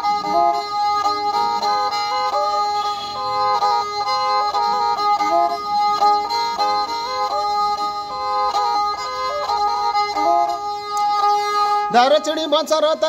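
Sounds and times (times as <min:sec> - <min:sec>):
bowed fiddle melody with drone: 0:00.0 - 0:13.0.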